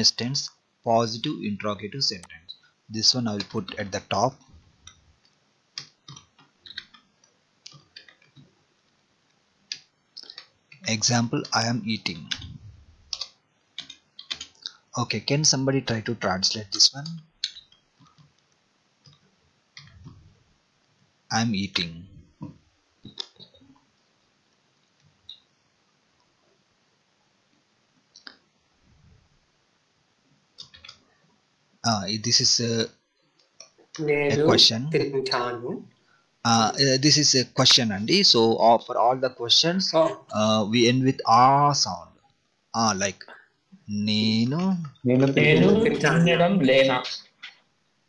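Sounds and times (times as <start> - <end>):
person speaking: 0.0 - 4.4, 10.2 - 13.2, 15.0 - 17.3, 21.3 - 22.2, 34.0 - 35.9, 36.5 - 42.1, 42.8 - 47.3
computer keyboard typing: 13.1 - 14.6.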